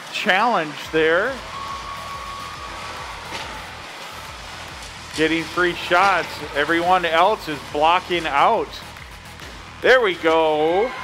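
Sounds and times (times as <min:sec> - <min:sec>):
background music: 0:00.0 - 0:11.0
indoor arena ambience: 0:00.0 - 0:11.0.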